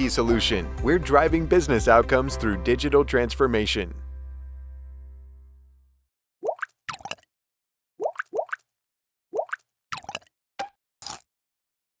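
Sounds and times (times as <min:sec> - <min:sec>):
cartoon upward bloops: 0:06.4 - 0:07.2, 0:09.4 - 0:10.7.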